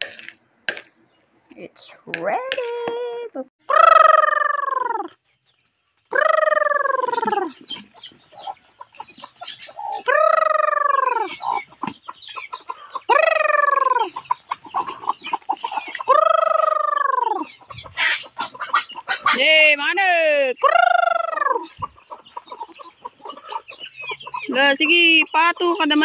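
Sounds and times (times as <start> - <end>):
hens clucking softly: 6.6 - 19.9, 20.8 - 26.0.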